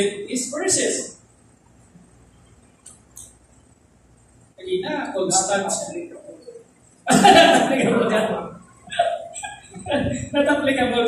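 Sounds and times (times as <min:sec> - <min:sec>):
person laughing: 0:07.1 - 0:10.4.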